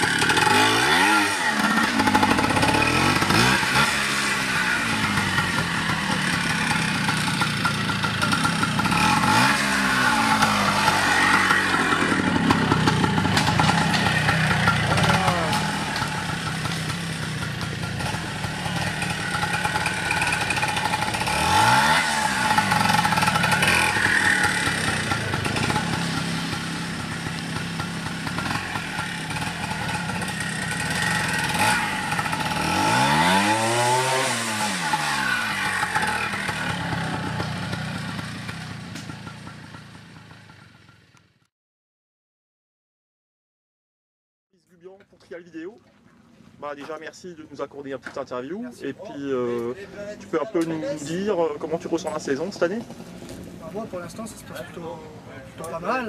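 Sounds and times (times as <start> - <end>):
motorcycle engine revving: 0.0 - 41.4, 50.8 - 56.0.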